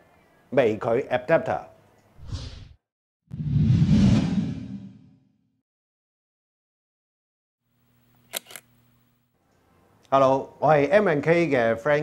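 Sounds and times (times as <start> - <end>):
whoosh with deep rumble: 2.2 - 5.2.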